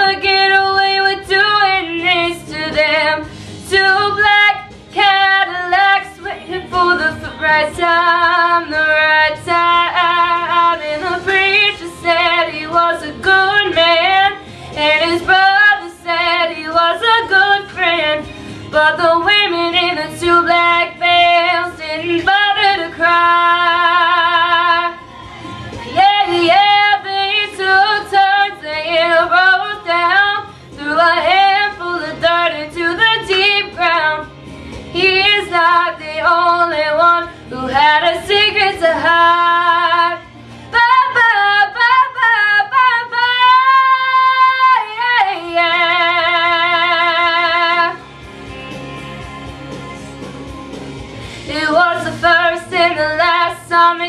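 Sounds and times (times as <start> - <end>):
woman singing a country ballad: 0.0 - 48.0, 51.3 - 54.0.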